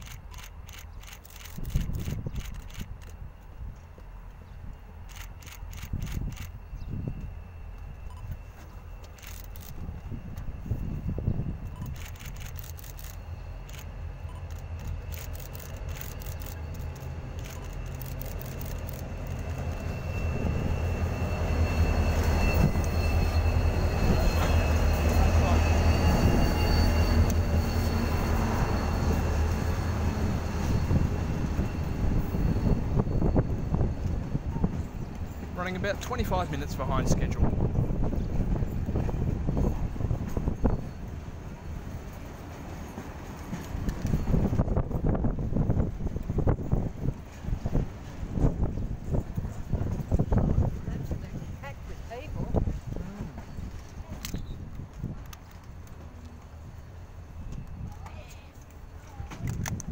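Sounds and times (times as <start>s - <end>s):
diesel locomotive rumble: 0.0s - 59.9s
thin high squeal: 12.9s - 35.4s.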